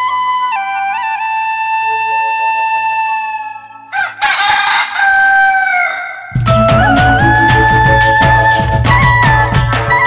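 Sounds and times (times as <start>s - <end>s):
rooster crowing: 3.9s - 6.4s
band with drums and bass: 6.4s - 10.0s.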